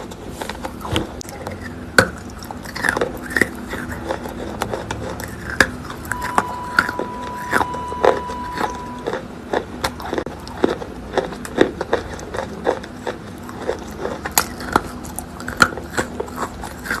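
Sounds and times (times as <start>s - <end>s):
chalk being chewed: 0.0s - 7.6s, 8.5s - 17.0s.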